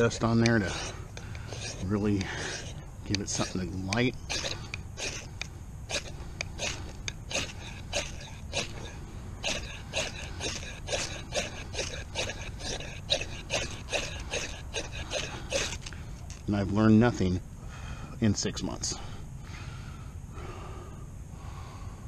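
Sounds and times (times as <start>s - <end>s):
knife scraping ferrocerium rod: 0.0s - 16.4s.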